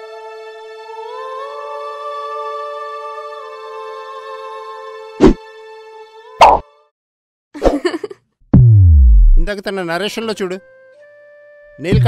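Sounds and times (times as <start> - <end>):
sharp deep hits: 8.6 - 9.5.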